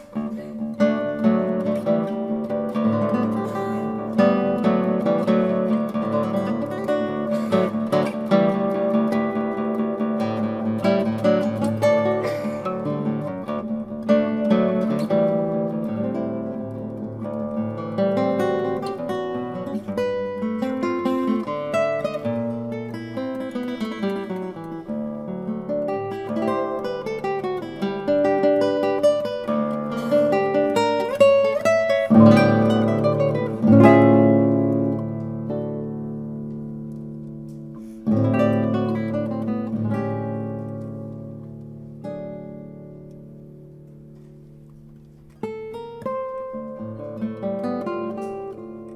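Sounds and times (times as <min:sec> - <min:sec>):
fingerpicked classical guitar: 0:00.0 - 0:48.9.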